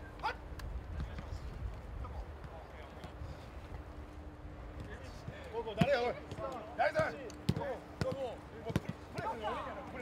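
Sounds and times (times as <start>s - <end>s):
players' voices: 0.0s - 4.0s, 4.6s - 10.0s
soccer ball kick thumps: 7.5s - 9.3s.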